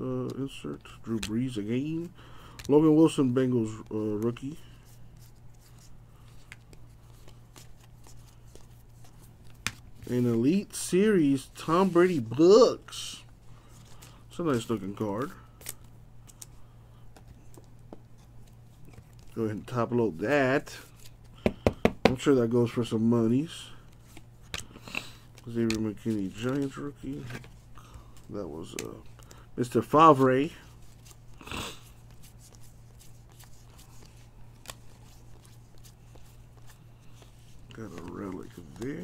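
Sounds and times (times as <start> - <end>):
low electrical hum: 0.0 - 39.0
trading cards clicking and rustling: 0.2 - 12.4, 13.6 - 19.8, 20.8 - 39.0.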